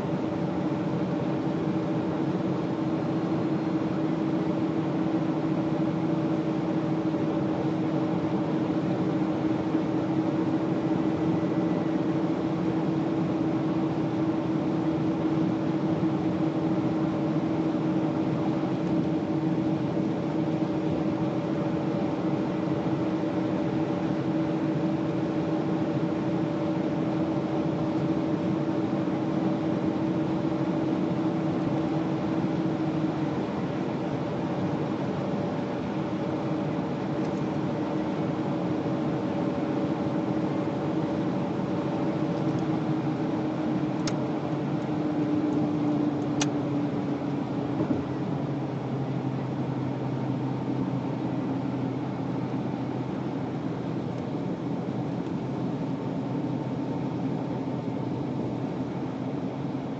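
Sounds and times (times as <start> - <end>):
car engine and road noise: 0.0 - 59.9.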